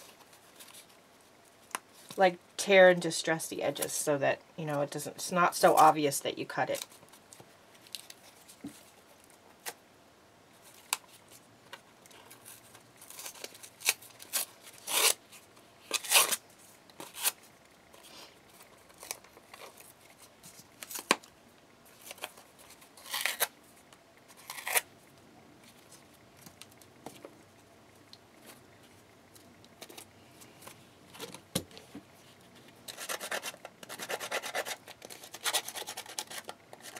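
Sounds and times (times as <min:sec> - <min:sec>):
cardboard being torn: 0:13.0 - 0:15.2, 0:15.9 - 0:16.4, 0:23.0 - 0:23.5, 0:24.3 - 0:24.8.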